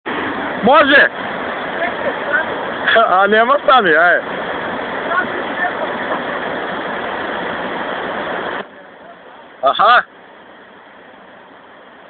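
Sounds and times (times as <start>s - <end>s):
water rushing over a weir: 0.1s - 12.0s.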